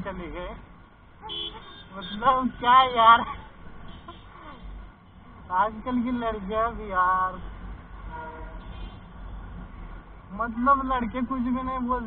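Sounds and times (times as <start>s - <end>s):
vehicle horn: 1.2s - 2.4s, 8.1s - 9.1s.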